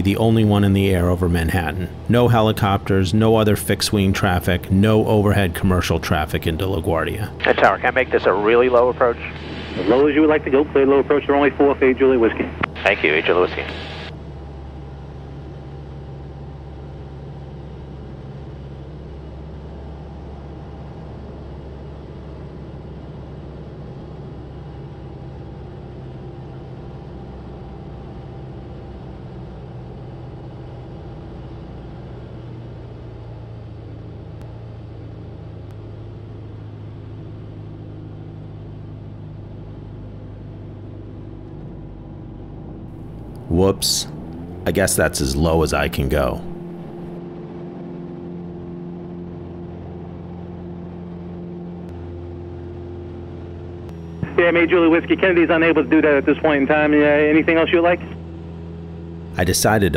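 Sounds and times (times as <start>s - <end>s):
propeller aircraft engine droning: 0.0s - 59.9s.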